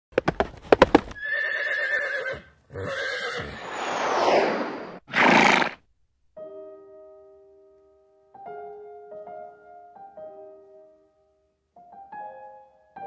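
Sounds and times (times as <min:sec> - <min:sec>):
hoof clip-clops: 0:00.2 - 0:01.2
horse whinny: 0:01.2 - 0:03.7, 0:05.1 - 0:05.8
horse breathy blast: 0:03.4 - 0:05.8.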